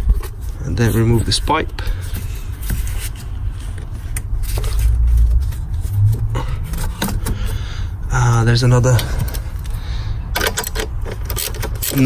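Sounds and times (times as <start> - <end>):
low rumble: 4.2 - 8.2
clicks and scrapes of rubber pipe: 10.6 - 12.0.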